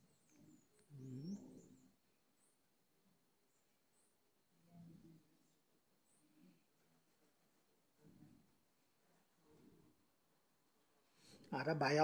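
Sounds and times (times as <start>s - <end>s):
low cooing bird call: 0.4s - 1.9s.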